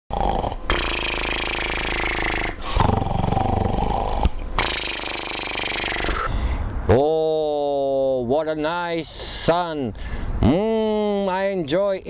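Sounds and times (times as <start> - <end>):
man snoring loudly: 0.1 - 6.3.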